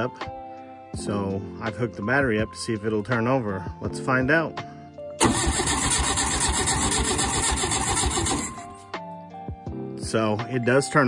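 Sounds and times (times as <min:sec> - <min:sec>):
background music: 0:00.0 - 0:11.0
starter motor cranking engine: 0:05.2 - 0:08.7.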